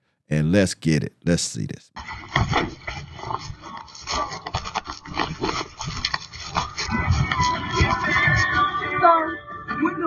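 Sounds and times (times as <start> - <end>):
clothing rubbing against microphone: 2.0 - 9.2.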